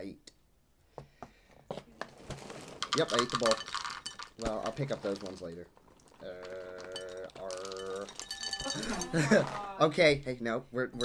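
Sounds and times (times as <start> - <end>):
cereal pouring into cup: 2.1 - 9.6.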